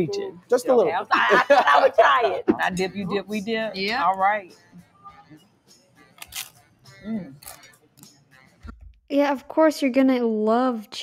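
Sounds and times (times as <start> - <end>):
faint background music: 0.0 - 11.0
tortilla chip crunch: 6.2 - 6.6.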